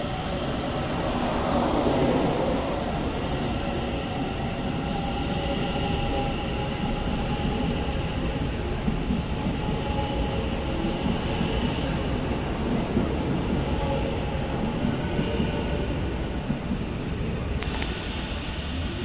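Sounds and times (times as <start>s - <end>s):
train wheels rumbling: 0.0s - 19.0s.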